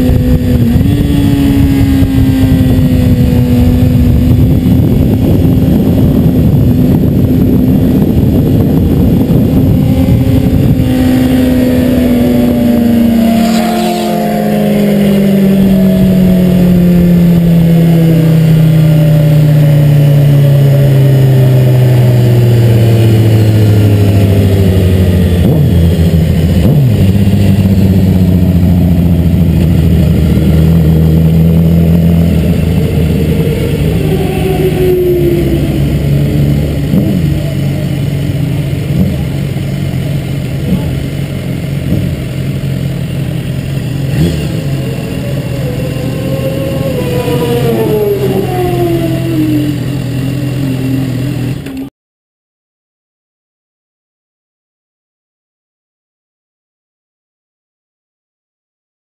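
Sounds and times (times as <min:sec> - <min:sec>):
motorcycle engine slowing down: 0:00.0 - 0:51.9.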